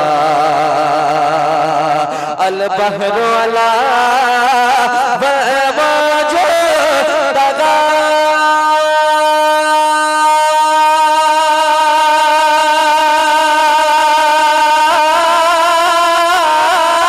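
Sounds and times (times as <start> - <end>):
man singing a long note: 0.0 - 17.0.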